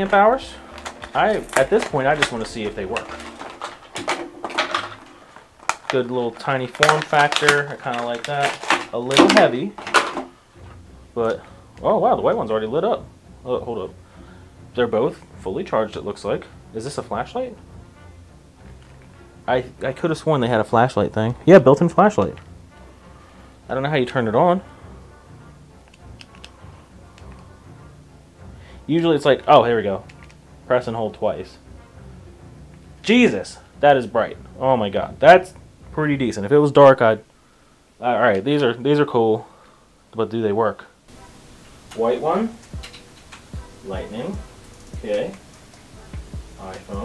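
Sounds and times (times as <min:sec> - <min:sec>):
quiet background music: 0:00.0 - 0:47.0
package being opened by hand: 0:00.7 - 0:10.2
plastic device clicks: 0:25.9 - 0:26.6.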